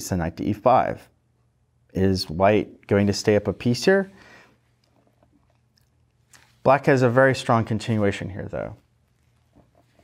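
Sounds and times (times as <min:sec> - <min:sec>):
short breath: 0:04.1 - 0:04.7.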